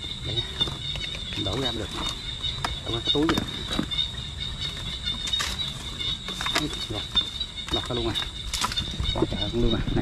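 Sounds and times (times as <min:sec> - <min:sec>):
high insect whine: 0:00.0 - 0:10.0.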